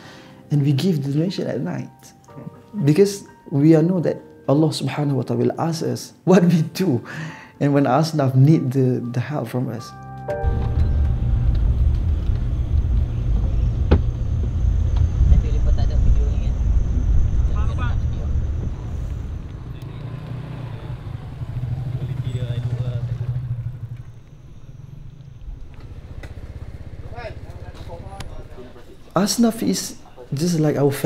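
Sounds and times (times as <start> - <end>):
passing motorcycle: 10.4 - 30.3
wind and road noise: 10.4 - 31.0
small motorcycle engine: 10.9 - 29.3.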